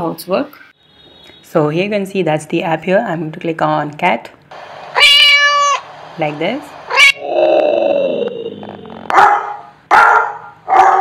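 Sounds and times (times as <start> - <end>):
dog growling: 7.1 - 9.2
dog barking: 9.1 - 11.0.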